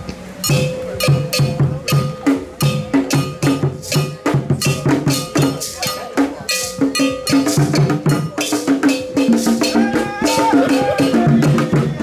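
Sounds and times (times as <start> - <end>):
hand drums playing: 0.4 - 12.0.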